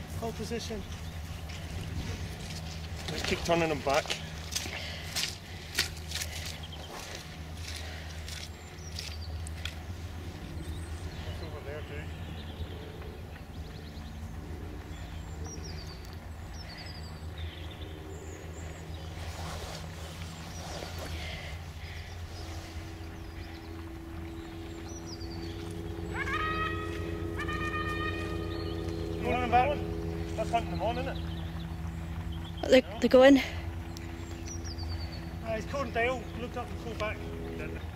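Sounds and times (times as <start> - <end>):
steady low rumble: 0.0 - 37.9
hounds baying: 25.4 - 30.4.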